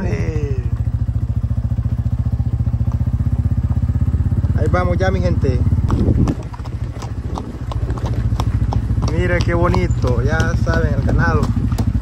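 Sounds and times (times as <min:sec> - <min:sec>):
hooves clopping on dirt road: 0:00.0 - 0:12.0
low steady rumble: 0:00.0 - 0:12.0.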